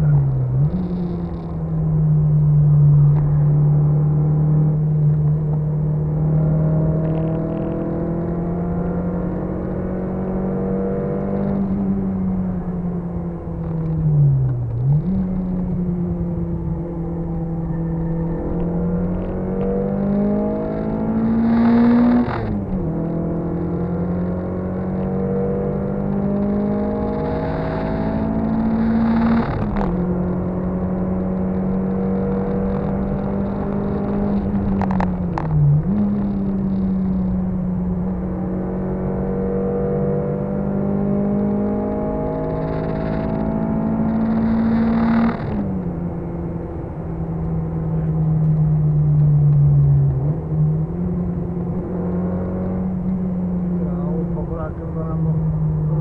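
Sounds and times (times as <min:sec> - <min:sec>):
car engine accelerating: 0:00.0 - 0:56.0.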